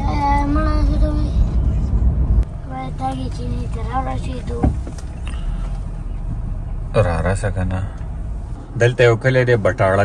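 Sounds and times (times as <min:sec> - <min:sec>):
car cabin engine and road rumble: 0:00.0 - 0:10.0.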